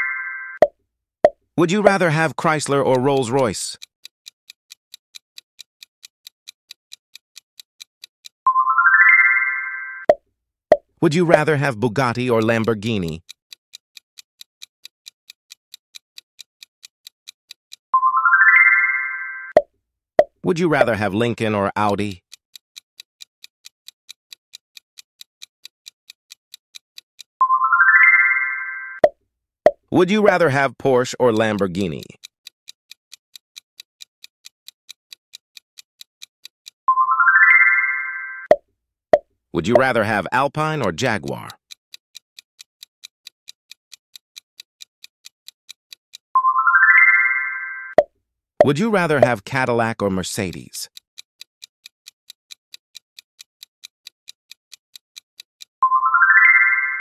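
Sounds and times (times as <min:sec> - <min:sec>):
bright rising chime: 0:08.5 - 0:10.0, 0:18.0 - 0:19.5, 0:27.4 - 0:29.0, 0:37.0 - 0:38.4, 0:46.4 - 0:47.9, 0:55.9 - 0:57.0.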